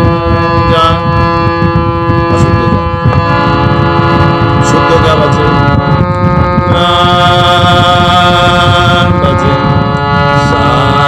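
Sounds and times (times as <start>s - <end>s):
harmonium playing held chords: 0.0s - 11.0s
heavy low rumbling noise: 0.0s - 11.0s
person singing: 4.3s - 11.0s.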